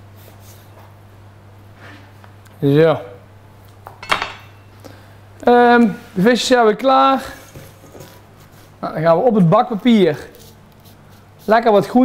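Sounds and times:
steady low hum: 0.0 - 12.0
knife clattering on surface: 4.0 - 4.6.

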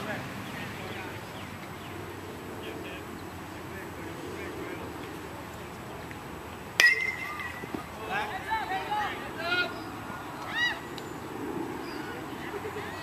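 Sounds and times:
metal bat hitting ball: 6.8 - 7.8.

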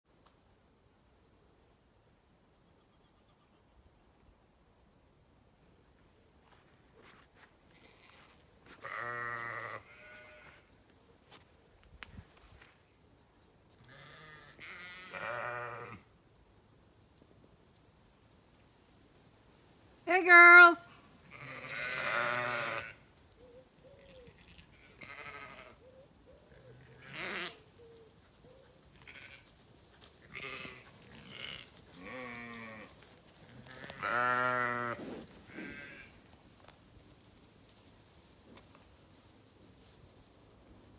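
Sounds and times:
ewe bleating: 7.7 - 10.7, 13.8 - 16.0, 21.3 - 23.1, 24.0 - 25.8, 26.5 - 27.7, 28.9 - 29.5, 30.2 - 36.2.

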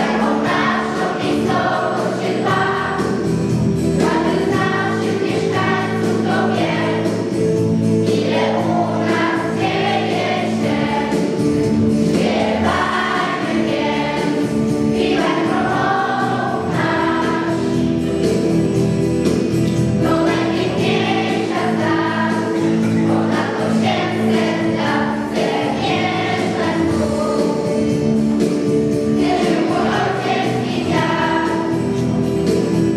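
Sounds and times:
children's choir singing: 0.0 - 32.9
sustained instrumental accompaniment: 0.0 - 32.9.

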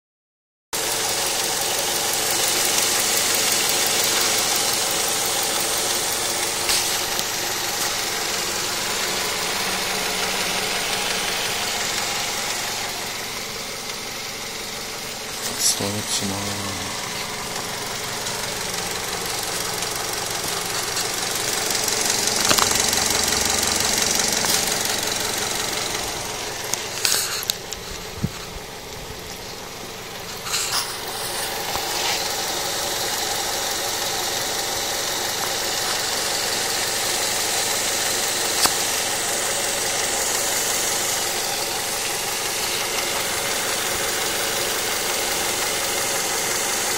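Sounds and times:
car engine idling: 0.8 - 46.9.

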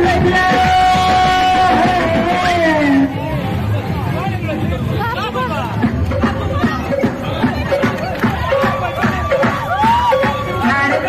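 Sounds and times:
crowd talking and shouting: 0.0 - 11.0
music playing: 0.0 - 11.0.

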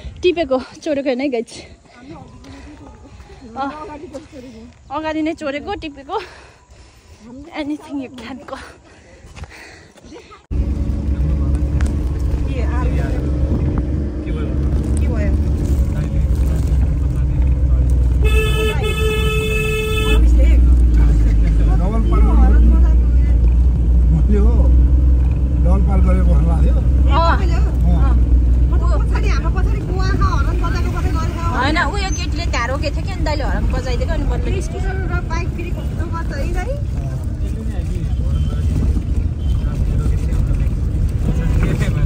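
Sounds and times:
car engine and road rumble: 9.4 - 42.0
vehicle horn steady tone: 18.1 - 20.4, 38.0 - 39.9.

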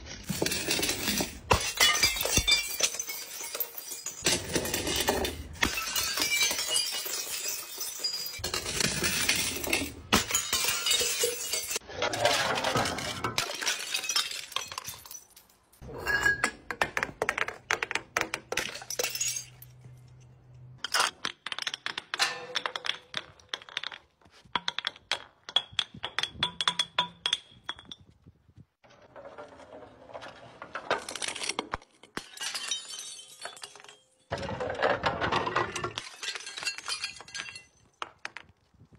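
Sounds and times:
glass shattering: 0.2 - 16.6, 18.5 - 20.2, 31.0 - 38.0
glass bottles clattering down steps: 0.2 - 20.2, 20.8 - 28.2, 30.1 - 38.5.

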